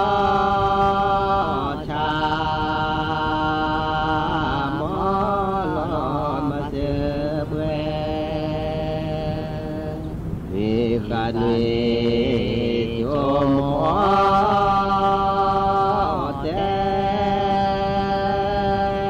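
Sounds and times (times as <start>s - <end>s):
chant-like singing: 0.0s - 19.0s
steady low drone: 0.0s - 19.0s.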